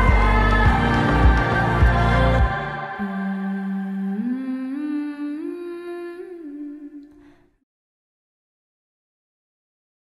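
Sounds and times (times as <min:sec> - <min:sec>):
person humming a held note: 0:03.0 - 0:07.3.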